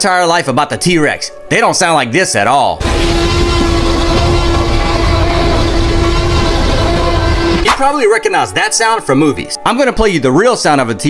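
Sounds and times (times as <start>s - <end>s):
dinosaur roar over deep rumble: 2.8s - 7.7s.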